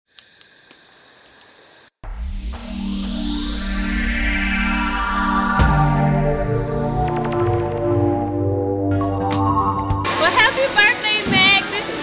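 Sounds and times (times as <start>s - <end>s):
thin high whine: 1.6s - 8.3s.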